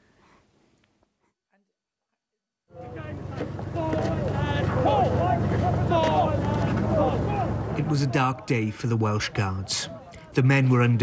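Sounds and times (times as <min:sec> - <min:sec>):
men shouting: 0:02.7 - 0:08.5
boat motor running: 0:02.8 - 0:07.9.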